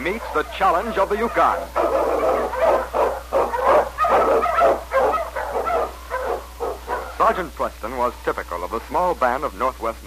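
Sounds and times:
dogs barking: 0:00.0 - 0:07.4
low recording hum: 0:00.0 - 0:10.0.

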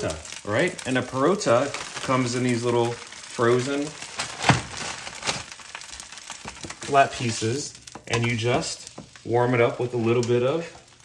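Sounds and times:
bread sizzling in frying pan: 0:00.0 - 0:11.0.

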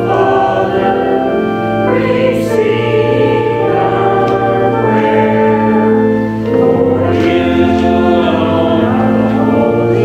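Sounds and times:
choir singing slowly: 0:00.0 - 0:10.0.

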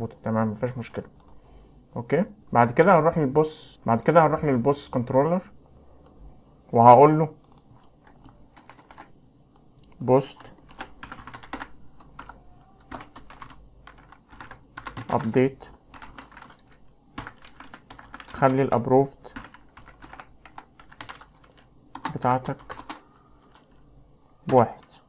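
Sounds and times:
keyboard keys clicking: 0:07.4 - 0:09.1, 0:10.7 - 0:15.4, 0:16.0 - 0:18.6, 0:19.3 - 0:23.8.

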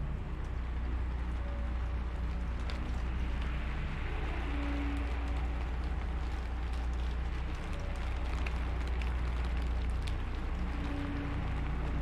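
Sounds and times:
deep constant rumble: 0:00.0 - 0:12.0
steady rain: 0:00.0 - 0:12.0.

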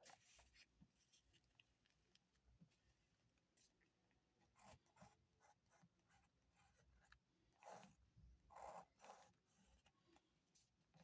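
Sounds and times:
ballpoint pen scratching on paper: 0:04.4 - 0:10.2.

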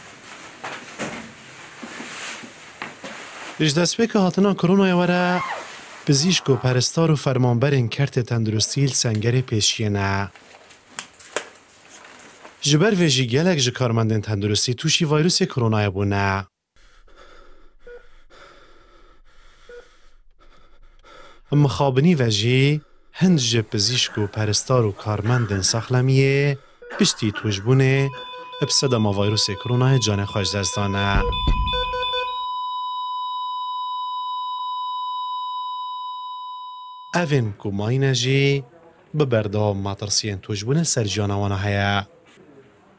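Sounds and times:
patient monitor steady tone: 0:23.2 - 0:37.5.

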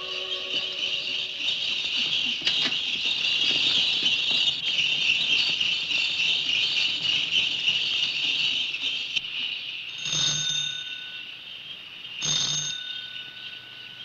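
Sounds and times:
orchestral violin music: 0:00.0 - 0:01.6
sleigh bells jingling: 0:00.0 - 0:02.3.

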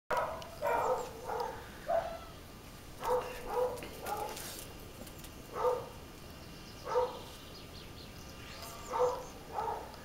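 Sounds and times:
dog barking: 0:00.1 - 0:02.3, 0:03.0 - 0:04.5, 0:05.5 - 0:06.0, 0:06.9 - 0:07.2, 0:08.9 - 0:10.0.

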